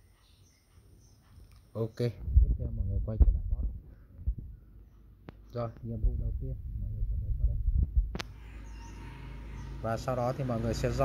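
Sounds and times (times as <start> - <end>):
steady low hum: 2.1 - 11.0
sharp click: 8.1 - 8.4.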